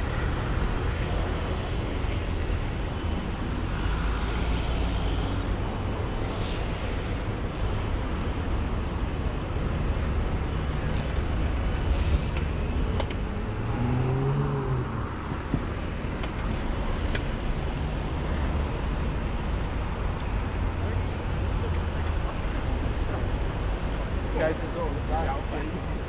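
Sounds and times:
cars passing: 0:00.0 - 0:26.0
faint voices of passers-by: 0:19.4 - 0:26.0.

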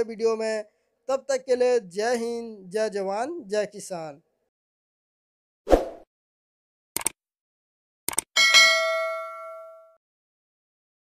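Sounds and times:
short clicks: 0:07.0 - 0:07.2, 0:08.1 - 0:08.3
bell-like ding: 0:08.4 - 0:10.0.

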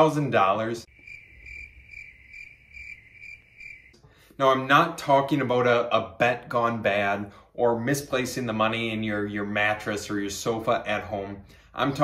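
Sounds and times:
cricket chirping: 0:00.9 - 0:04.0.

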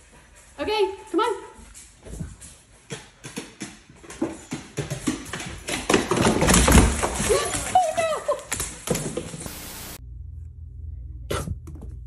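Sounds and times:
dog paws on wooden stairs: 0:01.0 - 0:09.5.

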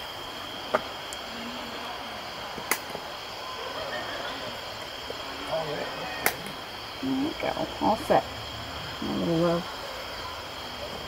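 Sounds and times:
faint high steady tone: 0:00.0 - 0:11.0
outdoor background noise: 0:00.0 - 0:11.0.

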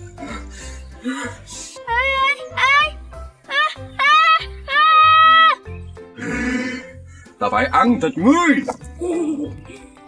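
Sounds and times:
background music with bass pulse: 0:00.0 - 0:10.0.

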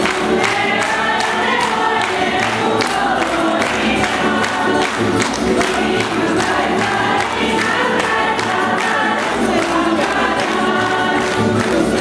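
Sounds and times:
folk ensemble singing in chorus: 0:00.0 - 0:12.0.

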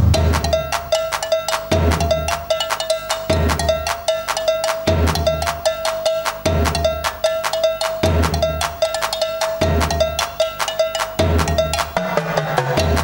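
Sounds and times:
high drum note fast pulse: 0:00.0 - 0:02.3.

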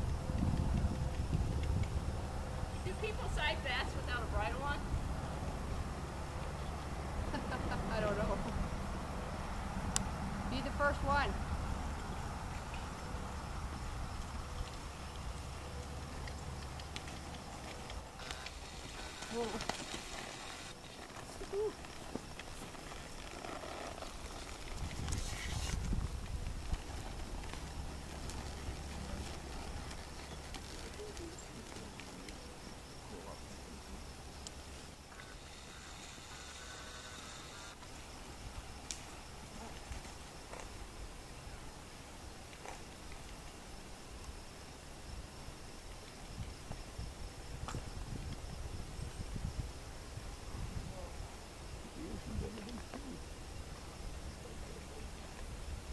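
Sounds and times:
hoofbeats on soft dirt: 0:00.0 - 0:07.0, 0:11.0 - 0:32.8
person laughing: 0:07.3 - 0:08.0.

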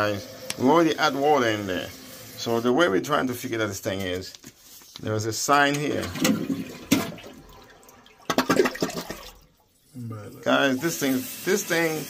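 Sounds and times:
toilet flushing water rush: 0:00.0 - 0:03.0, 0:05.7 - 0:12.0.

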